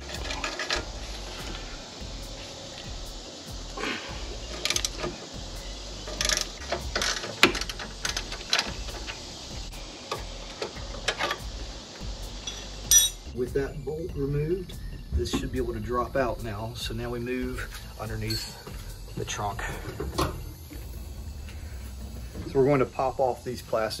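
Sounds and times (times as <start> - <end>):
ratchet wrench clicking: 4.4 - 11.6
metal tool clinks: 12.4 - 13.2, 18.3 - 18.7.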